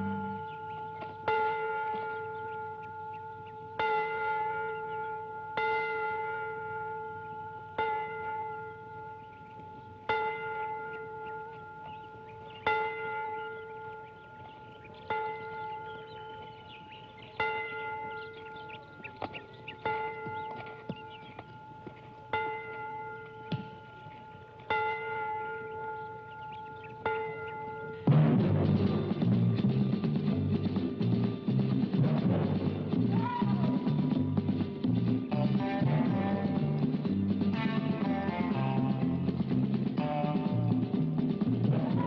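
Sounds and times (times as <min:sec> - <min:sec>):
church bell tolling: 0:00.0 - 0:29.5.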